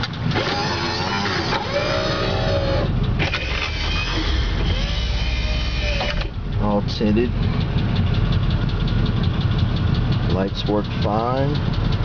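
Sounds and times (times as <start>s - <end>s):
car engine idling: 0.0s - 12.0s
power window motor whine: 0.3s - 6.4s.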